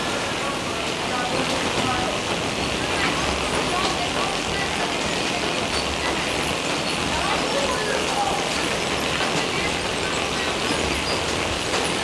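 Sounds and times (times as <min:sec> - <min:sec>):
conveyor machinery running: 0:00.0 - 0:12.0.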